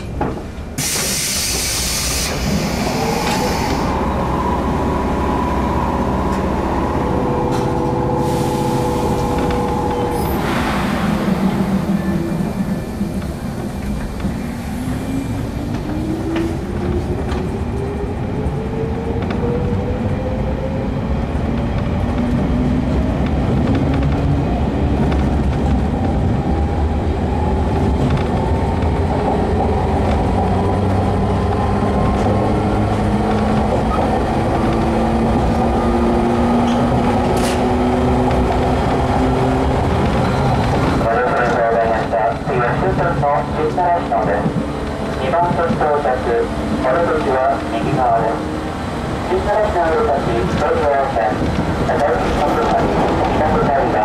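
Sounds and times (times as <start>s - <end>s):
wheels rumbling on rail: 0.0s - 54.0s.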